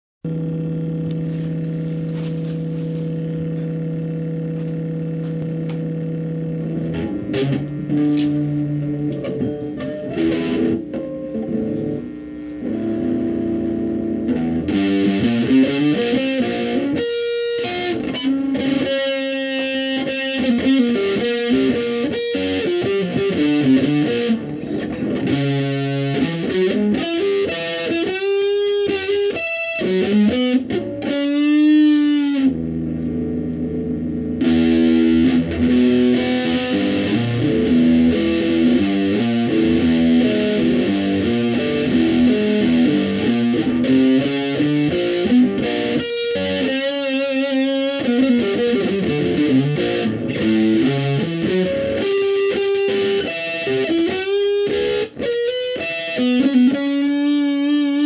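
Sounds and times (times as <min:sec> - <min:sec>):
electric guitar improvising: 0:00.3 - 0:58.0.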